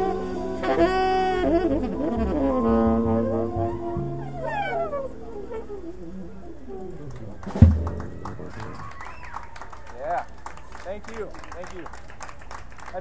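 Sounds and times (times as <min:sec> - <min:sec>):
tenor saxophone: 0:00.0 - 0:08.8
upright bass: 0:00.0 - 0:08.8.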